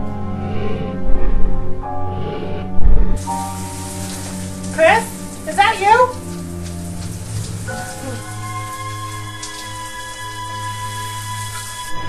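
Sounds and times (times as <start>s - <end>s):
background music tones: 0.0s - 12.0s
shower water running: 3.2s - 12.0s.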